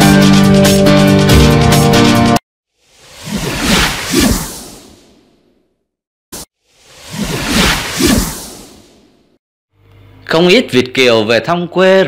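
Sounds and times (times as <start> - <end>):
whoosh transition effect: 2.8 - 5.3, 6.4 - 9.4.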